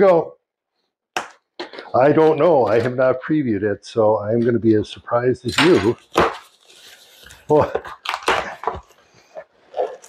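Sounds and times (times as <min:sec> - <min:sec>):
plastic wrapping crinkling: 0:05.6 - 0:10.0.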